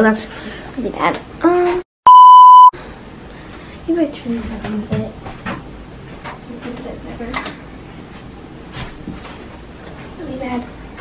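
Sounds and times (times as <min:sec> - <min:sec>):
high-pitched test-tone beep: 0:02.1 - 0:02.7.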